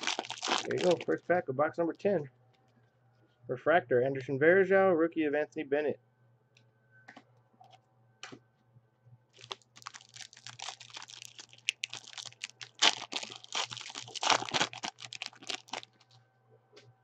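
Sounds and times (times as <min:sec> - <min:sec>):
foil wrapper tearing and crinkling: 0:00.0 - 0:01.2, 0:09.4 - 0:16.2.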